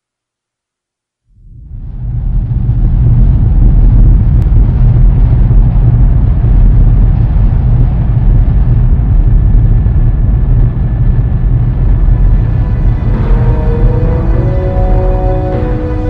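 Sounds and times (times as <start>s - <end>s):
rocket launch rumble: 1.5s - 16.0s.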